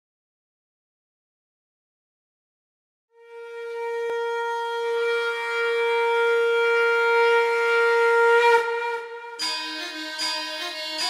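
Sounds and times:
long horn-like wind note: 0:03.2 - 0:11.0.

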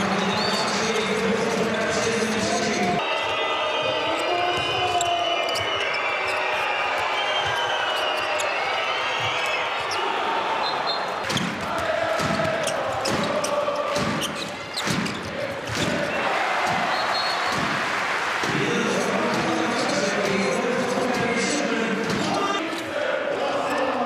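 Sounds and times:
crowd chanting: 0:00.0 - 0:04.5, 0:05.6 - 0:24.0.

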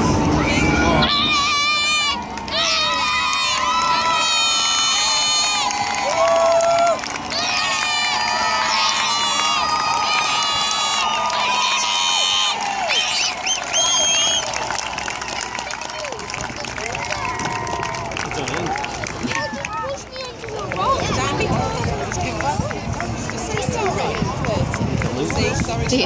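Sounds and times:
crowd cheering and shouting: 0:00.0 - 0:26.0.

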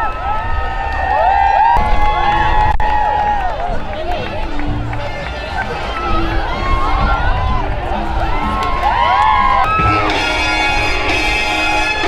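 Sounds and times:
crowd chattering and cheering: 0:00.0 - 0:12.0
music: 0:01.8 - 0:12.0.

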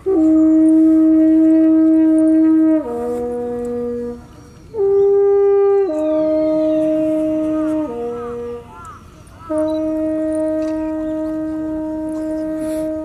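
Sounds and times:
horn playing long notes: 0:00.0 - 0:13.0.

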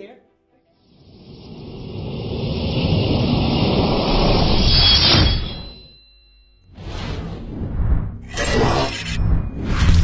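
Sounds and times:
deep rumbling whoosh riser: 0:01.0 - 0:05.4, 0:06.7 - 0:10.0.

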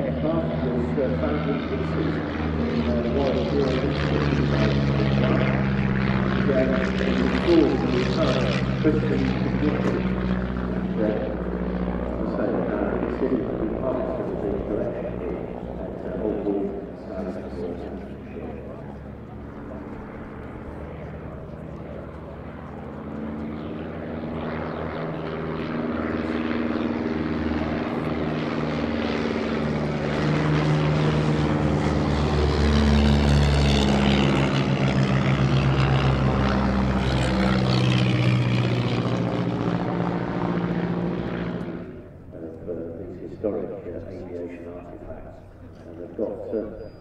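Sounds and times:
propeller aircraft engine flypast: 0:00.0 - 0:47.0.

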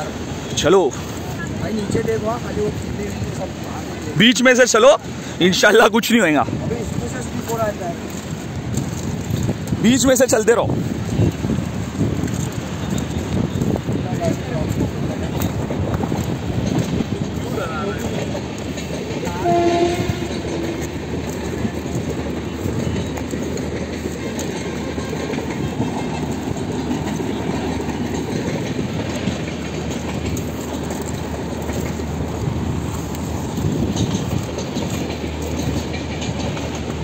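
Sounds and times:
steady rumbling noise: 0:00.0 - 0:37.0
horn sounding: 0:19.3 - 0:20.9.

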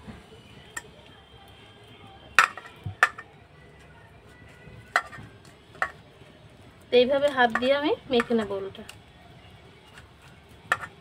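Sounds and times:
clinks against metal bowl: 0:02.4 - 0:03.3, 0:04.9 - 0:06.0, 0:10.7 - 0:11.0.

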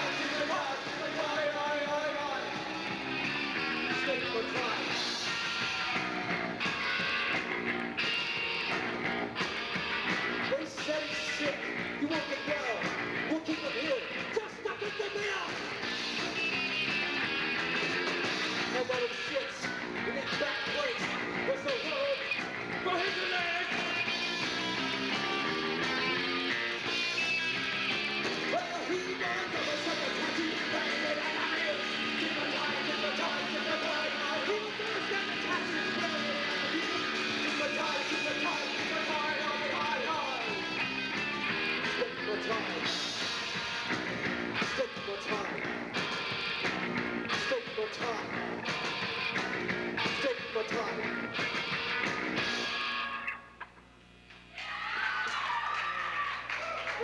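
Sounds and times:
electric guitars: 0:00.0 - 0:54.4
bass: 0:00.0 - 0:57.0
drums: 0:00.0 - 0:57.0.

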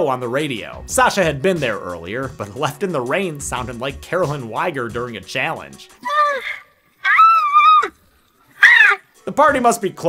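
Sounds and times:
high-pitched voice shrieking: 0:06.0 - 0:08.0, 0:08.6 - 0:09.0.

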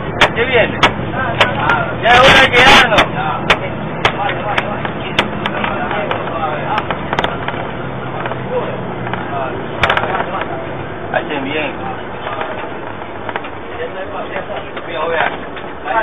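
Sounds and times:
bus engine running: 0:00.0 - 0:16.0
sharp clicks and knocks: 0:00.1 - 0:10.6, 0:12.2 - 0:13.6.

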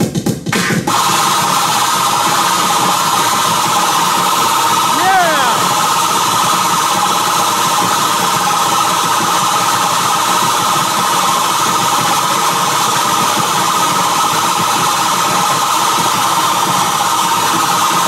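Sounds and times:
distorted noise music: 0:00.5 - 0:08.1.

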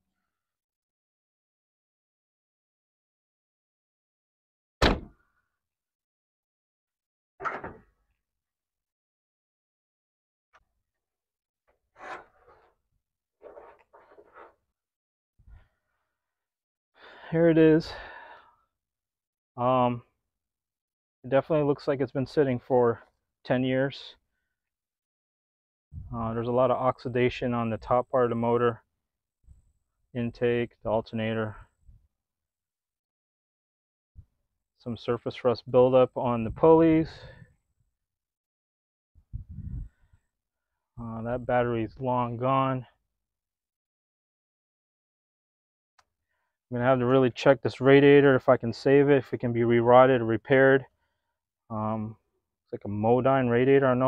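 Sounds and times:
short breath: 0:17.0 - 0:17.3, 0:17.9 - 0:18.6.

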